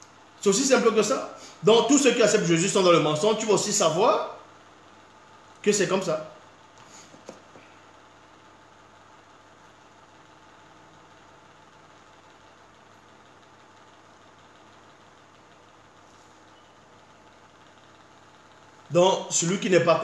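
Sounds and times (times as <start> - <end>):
low background hum and hiss: 0.0 - 20.0.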